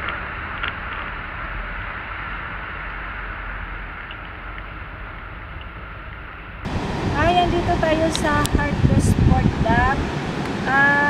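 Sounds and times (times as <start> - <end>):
car road and engine rumble: 0.0 - 11.0.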